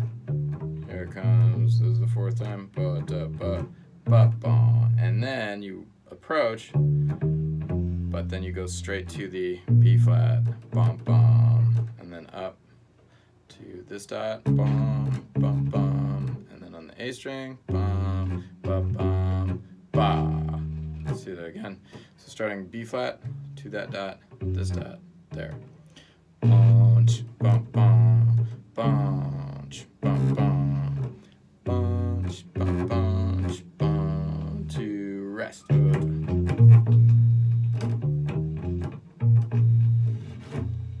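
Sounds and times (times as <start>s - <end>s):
electric bass guitar notes: 0.0s - 5.4s, 6.5s - 12.3s, 14.2s - 16.5s, 17.5s - 22.1s, 22.9s - 41.0s.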